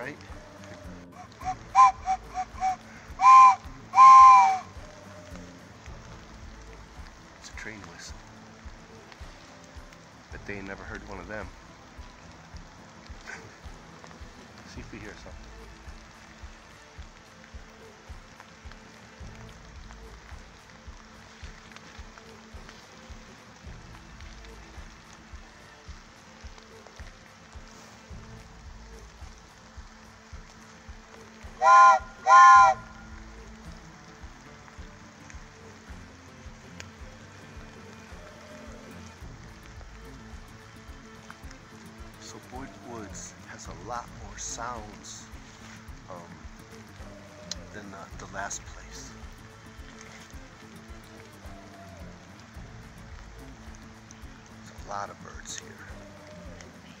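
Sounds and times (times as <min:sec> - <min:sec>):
faint hiss: 0:00.0 - 0:57.0
train whistle toots and blasts: 0:01.2 - 0:04.8, 0:31.6 - 0:33.1.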